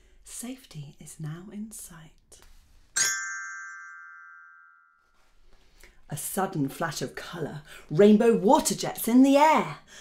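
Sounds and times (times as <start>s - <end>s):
glockenspiel bars ringing: 3.0s - 5.0s.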